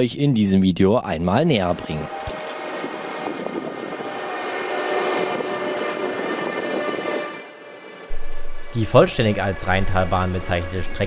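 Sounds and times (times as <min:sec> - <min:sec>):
faint train whine: 0:01.4 - 0:11.0
train wheels rushing on rail: 0:01.7 - 0:11.0.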